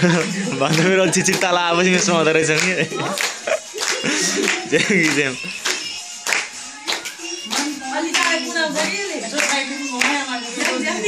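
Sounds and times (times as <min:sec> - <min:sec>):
dance music with singing: 0:00.0 - 0:11.0
group clapping hands: 0:00.0 - 0:11.0.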